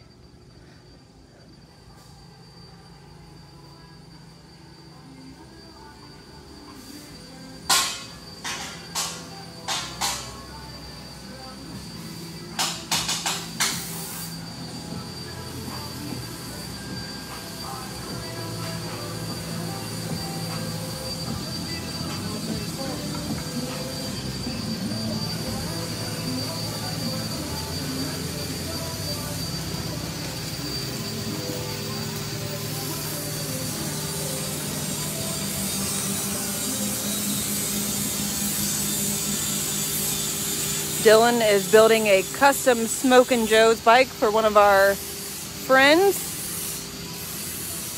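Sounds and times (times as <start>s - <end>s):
workshop machinery whining: 0.0s - 47.9s.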